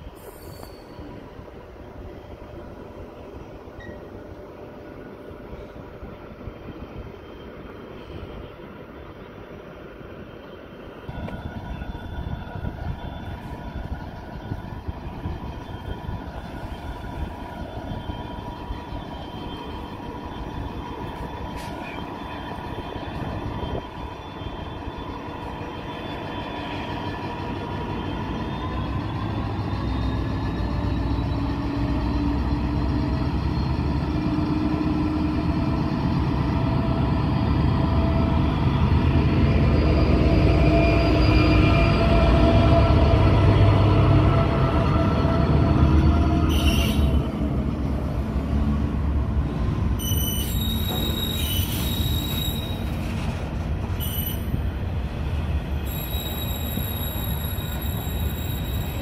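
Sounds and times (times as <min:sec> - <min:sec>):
diesel locomotive engine whining: 0:00.0 - 0:59.0.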